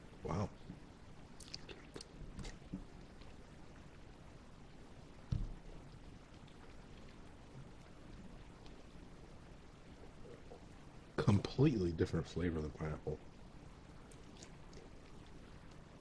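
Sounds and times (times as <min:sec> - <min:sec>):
chewing mouth sounds: 0:01.4 - 0:02.7, 0:14.1 - 0:15.2
dull thump: 0:05.3 - 0:05.6.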